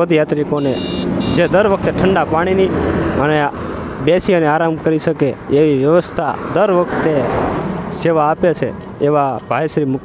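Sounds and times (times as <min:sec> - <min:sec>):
man talking: 0:00.0 - 0:10.0
vehicle running: 0:00.0 - 0:10.0.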